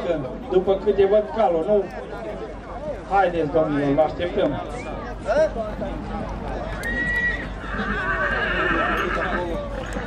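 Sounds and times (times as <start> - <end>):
horse neighing: 6.9 - 10.0.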